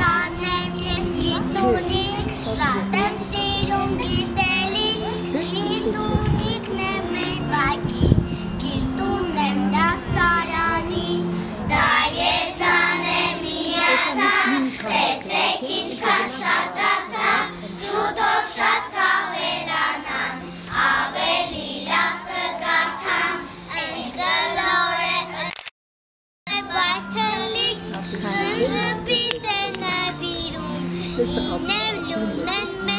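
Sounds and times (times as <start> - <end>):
children singing in chorus: 0.0 - 25.5.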